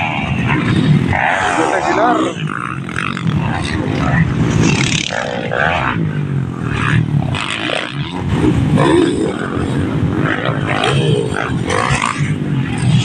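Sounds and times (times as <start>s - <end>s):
dirt bike engines revving: 0.0s - 13.0s
voices: 0.0s - 13.0s.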